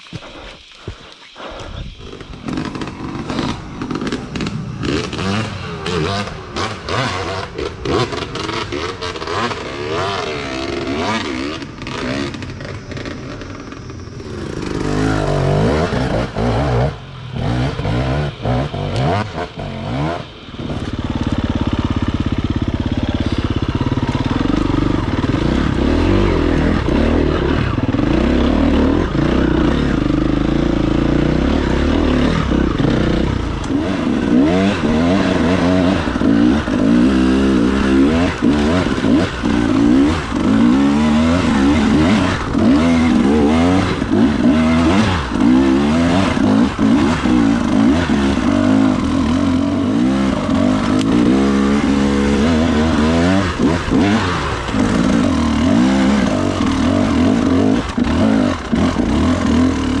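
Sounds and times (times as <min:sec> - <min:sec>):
dirt bike engine revving: 0:00.3 - 1:00.0.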